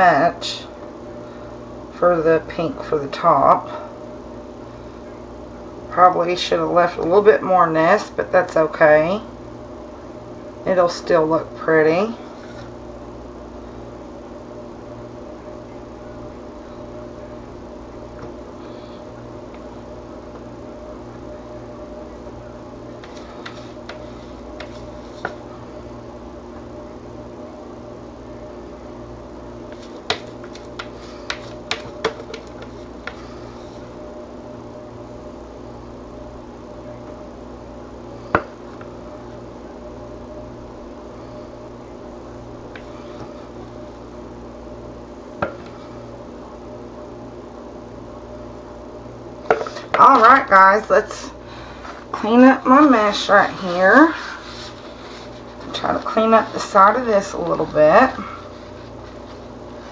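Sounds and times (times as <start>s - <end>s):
steady low hum: 0.0s - 59.9s
spatula scraping plastic: 23.0s - 25.4s, 29.7s - 33.4s.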